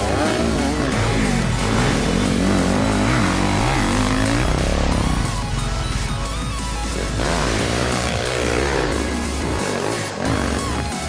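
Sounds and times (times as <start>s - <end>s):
background music: 0.0s - 11.0s
motorcycle engine revving: 0.0s - 11.0s.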